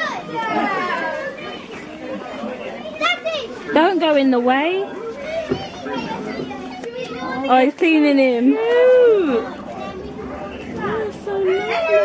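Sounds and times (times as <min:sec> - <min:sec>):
children and adults chattering: 0:00.0 - 0:12.0.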